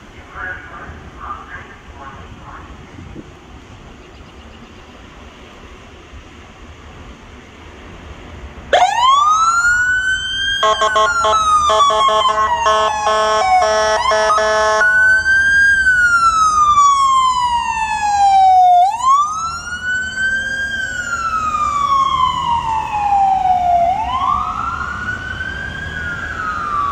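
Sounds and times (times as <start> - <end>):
ambulance siren wailing: 8.7 - 26.9
pulsing horn tones: 10.6 - 15.3.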